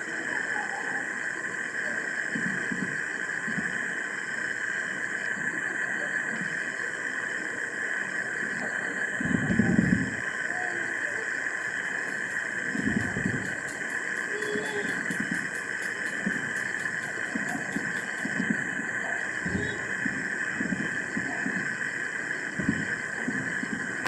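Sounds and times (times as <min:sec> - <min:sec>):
steady hiss and buzz: 0:00.0 - 0:24.0
distant fireworks thumps: 0:11.9 - 0:21.6.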